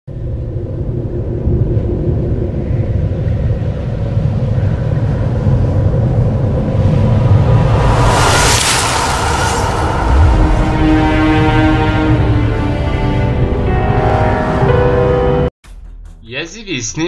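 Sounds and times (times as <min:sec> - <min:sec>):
ominous rumbling drone: 0:00.1 - 0:16.3.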